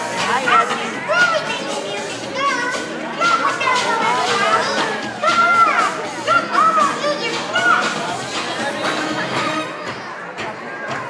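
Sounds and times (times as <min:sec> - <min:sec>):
children shouting and squealing: 0:00.0 - 0:11.0.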